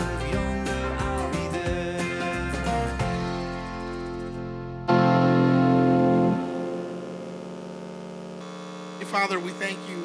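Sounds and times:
electrical hum: 5.5s - 10.0s.

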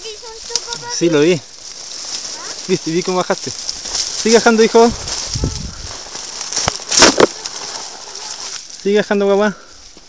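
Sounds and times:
footsteps crunching dry brush: 0.0s - 10.0s.

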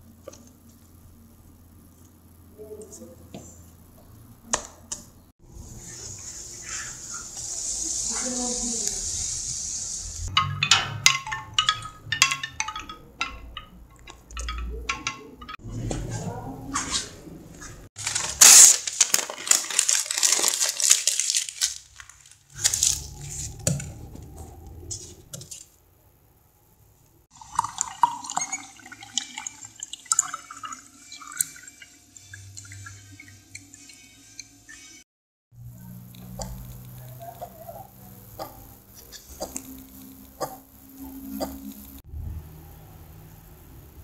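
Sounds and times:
paper being crumpled: 18.0s - 23.6s.

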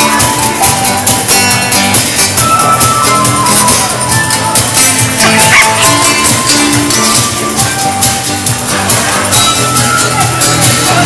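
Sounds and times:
drum beat: 0.0s - 11.0s
live dance band playing: 0.0s - 11.0s.

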